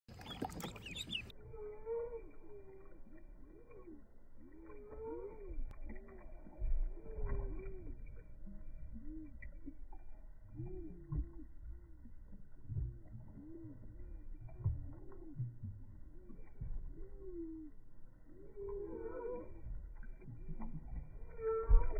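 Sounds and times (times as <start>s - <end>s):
slowed duckling peeps: 0.1s - 6.2s.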